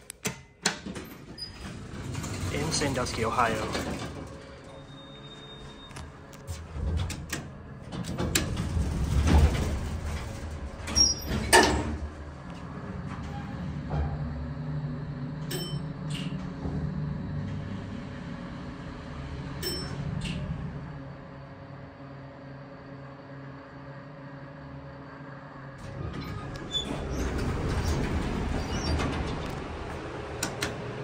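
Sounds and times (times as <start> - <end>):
elevator doors sliding open: 0.0 - 21.8, 25.7 - 31.0
elevator low hum: 0.8 - 31.0.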